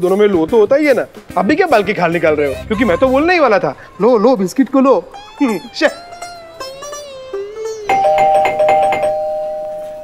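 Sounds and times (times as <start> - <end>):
electronic doorbell chime: 7.9 - 10.0.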